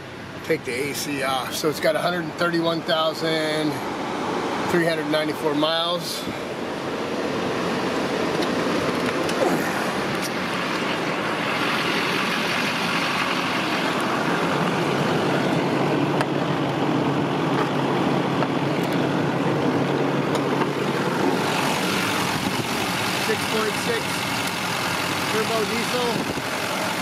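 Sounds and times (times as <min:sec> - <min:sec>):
diesel engine idling: 0:00.0 - 0:27.0.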